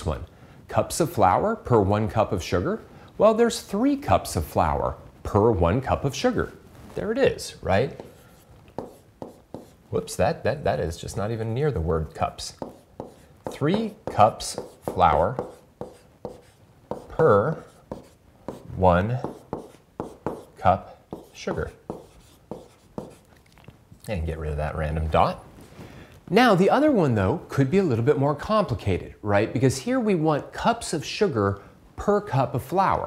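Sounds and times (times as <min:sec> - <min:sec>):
stylus writing on touchscreen: 0:07.8 - 0:09.9, 0:12.2 - 0:23.3.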